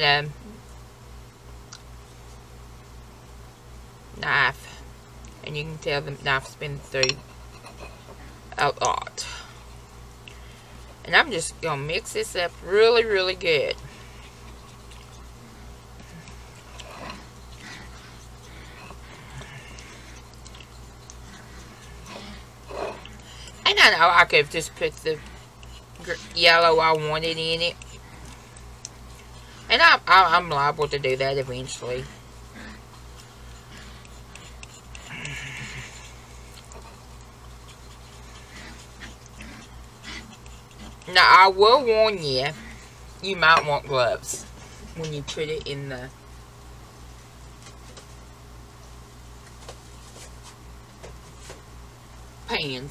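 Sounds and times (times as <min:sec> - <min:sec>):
low steady hum: 0:00.0 - 0:52.9
palette knife scraping wet paint: 0:23.0 - 0:32.2, 0:32.8 - 0:36.3, 0:37.7 - 0:42.3.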